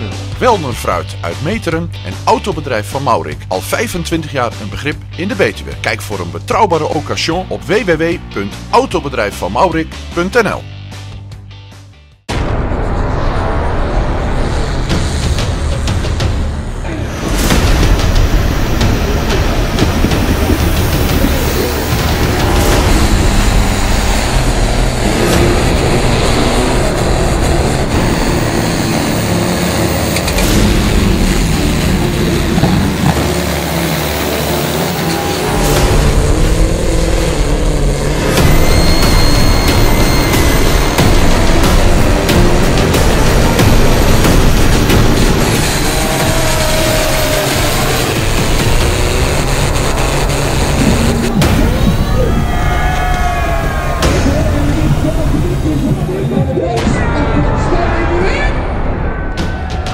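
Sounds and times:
background music: 0:00.0 - 0:59.9
tractor engines at full power: 0:12.9 - 0:59.9.

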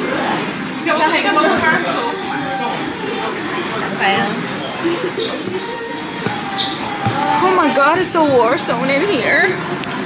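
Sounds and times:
soft thumps: 0:05.4 - 0:09.0.

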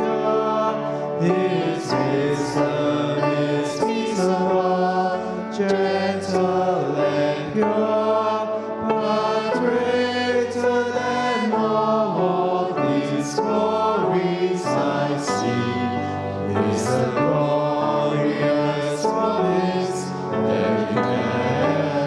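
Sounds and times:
group singing a hymn: 0:00.0 - 0:22.0
piano accompaniment: 0:00.0 - 0:22.0.

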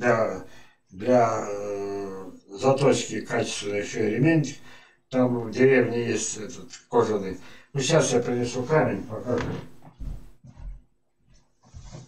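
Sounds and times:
footsteps thumping across room: 0:09.3 - 0:12.0.

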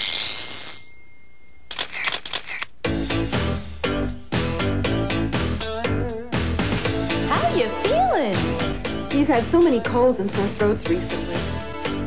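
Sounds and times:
camera shutter clicks: 0:01.7 - 0:02.7
music: 0:02.8 - 0:12.0.

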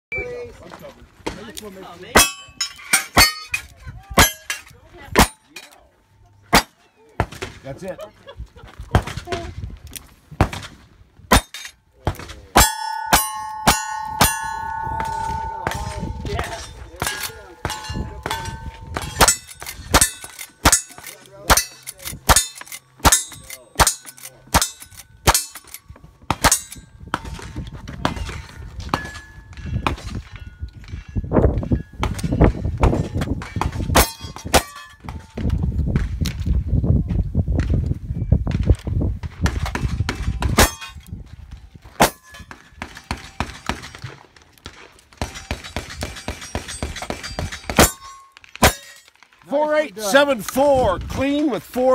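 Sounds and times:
steel plates ringing: 0:02.2 - 0:05.7, 0:12.6 - 0:27.0, 0:34.0 - 0:35.1, 0:42.0 - 0:42.5, 0:45.4 - 0:49.1.

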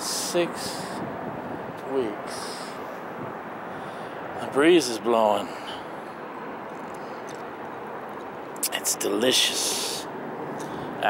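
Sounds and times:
distant traffic: 0:00.0 - 0:11.0.

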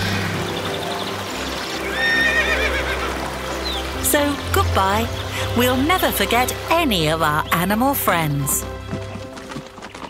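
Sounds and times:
background music with held notes: 0:00.0 - 0:10.0
horse whinnying: 0:01.8 - 0:03.2.

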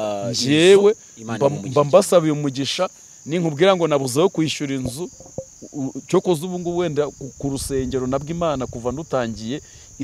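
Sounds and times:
man speaking: 0:00.0 - 0:09.6
crickets trilling: 0:00.0 - 0:10.0.

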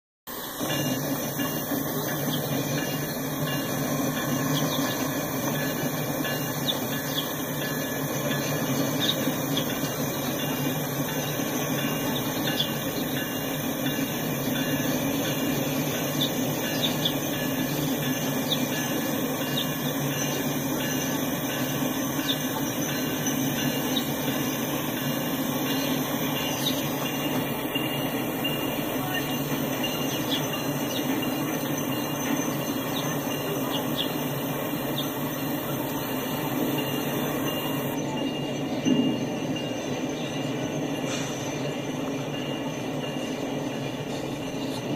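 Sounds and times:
freight train rumbling past: 0:00.3 - 0:44.9.

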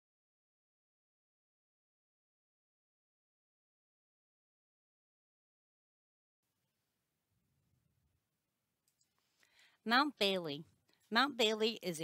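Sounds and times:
person speaking: 0:09.8 - 0:12.0.

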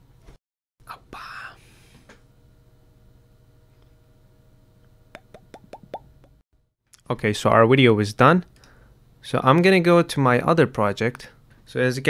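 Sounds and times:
faint steady hum: 0:00.8 - 0:06.4, 0:07.0 - 0:12.0.

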